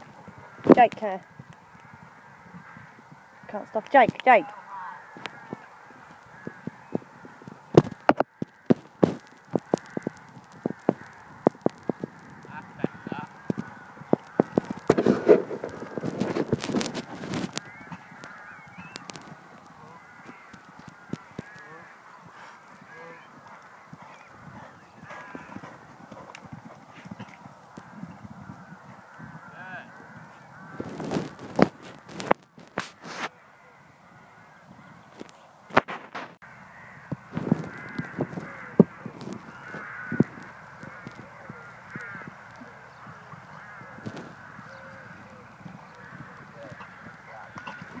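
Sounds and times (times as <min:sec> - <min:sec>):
birds calling: 0:00.0 - 0:48.0
rustling: 0:05.0 - 0:27.9, 0:30.0 - 0:33.3.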